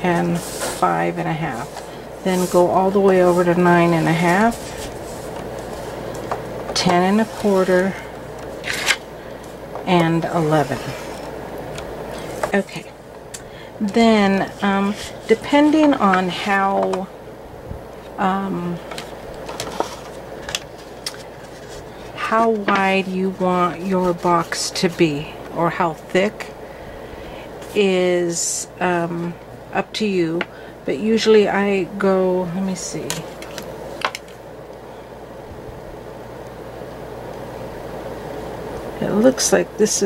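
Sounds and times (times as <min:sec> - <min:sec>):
low background hum: 0:00.0 - 0:40.0.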